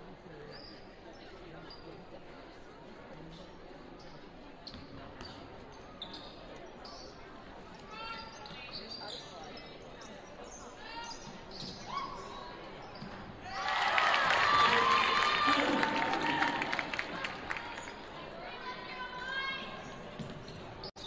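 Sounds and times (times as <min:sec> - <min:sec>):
sneakers squeaking: 0:00.4 - 0:02.0, 0:03.2 - 0:13.6, 0:16.8 - 0:21.0
crowd cheering: 0:13.4 - 0:18.3.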